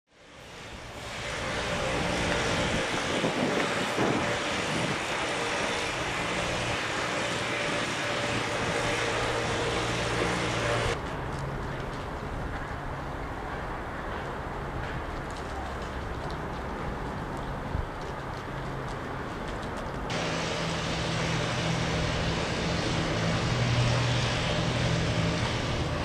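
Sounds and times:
steady rushing hiss: 0.1s - 11.1s, 19.6s - 26.0s
low engine-like hum: 0.2s - 11.0s, 20.1s - 26.0s.

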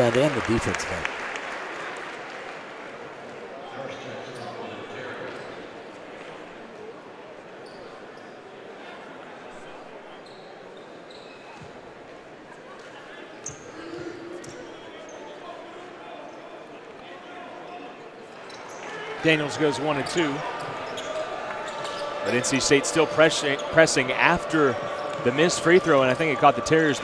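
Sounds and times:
murmur of arena crowd: 0.0s - 27.0s.

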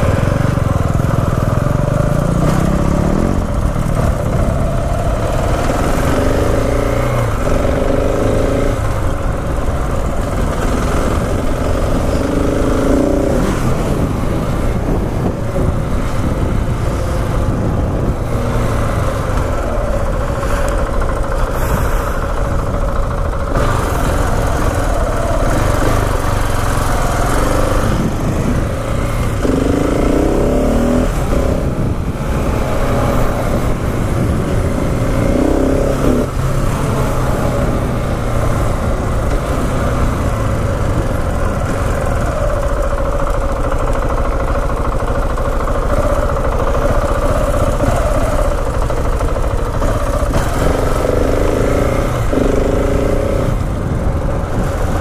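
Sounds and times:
wind on microphone: 0.0s - 43.2s, 45.8s - 55.0s
motorcycle engine revving: 0.0s - 55.0s.

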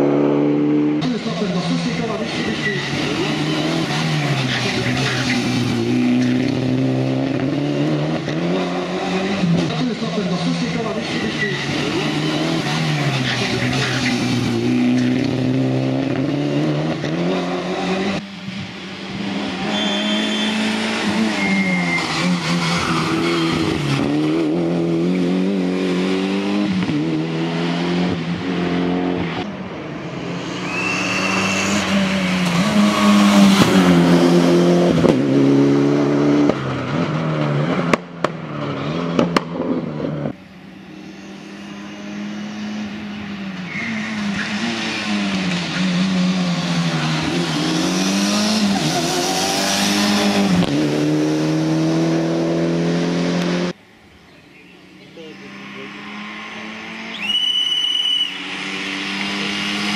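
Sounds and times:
car engine revving hard: 0.0s - 18.2s, 19.1s - 29.4s, 30.0s - 40.4s, 44.1s - 53.8s, 58.3s - 59.9s.

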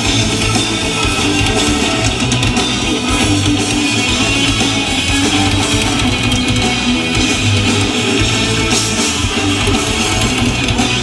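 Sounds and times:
bass guitar: 0.0s - 11.0s
distorted electric guitars: 0.0s - 11.0s
drum kit: 0.0s - 11.0s.

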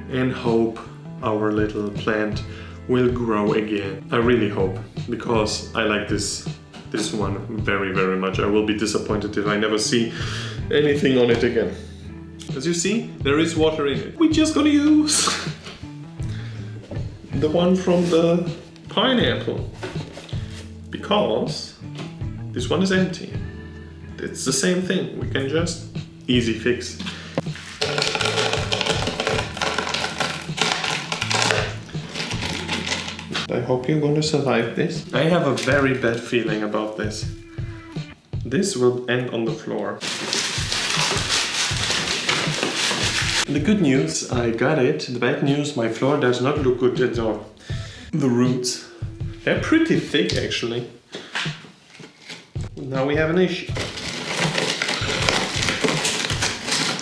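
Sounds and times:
background music: 0.0s - 57.0s
small rocks rattling in plastic planter: 27.5s - 33.5s, 53.8s - 57.0s.

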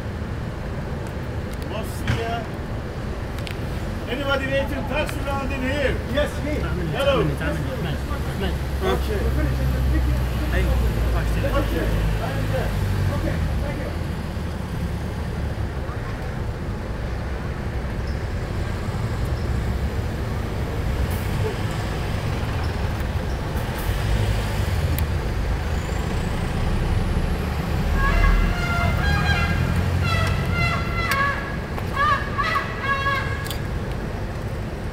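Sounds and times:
low conversation: 4.0s - 14.3s.

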